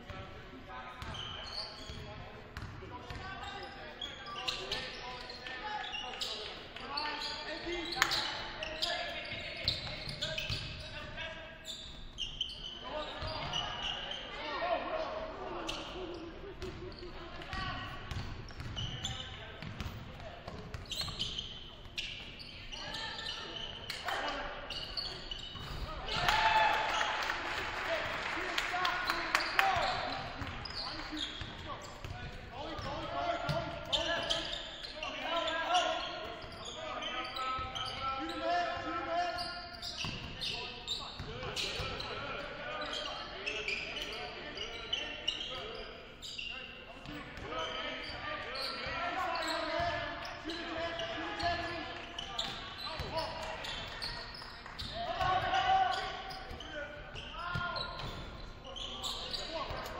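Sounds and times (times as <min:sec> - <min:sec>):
echoing shouts: 0:25.9 - 0:31.1, 0:54.9 - 0:57.9.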